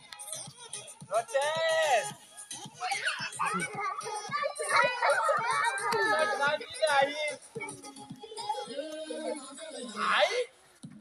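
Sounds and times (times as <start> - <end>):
children shouting and chattering: 2.5 - 10.2.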